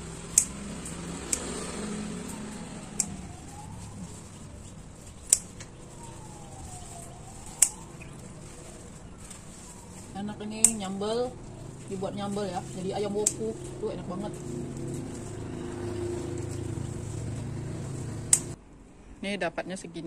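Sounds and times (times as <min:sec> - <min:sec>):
faint wailing siren: 0:00.0 - 0:18.6
scissors snipping stems: 0:00.0 - 0:18.6
road traffic hum: 0:00.0 - 0:20.0.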